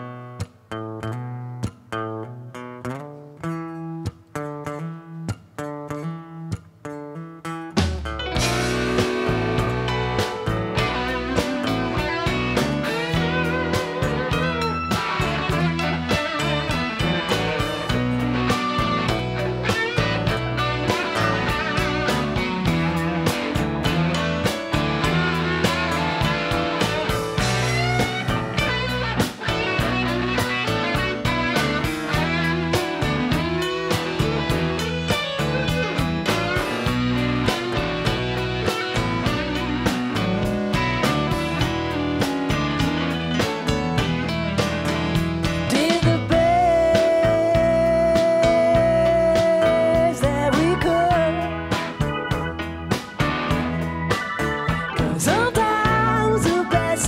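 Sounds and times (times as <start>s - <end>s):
strummed acoustic guitar: 0.0s - 49.8s
electric guitar lines: 0.0s - 57.0s
steady drum beat: 7.8s - 57.0s.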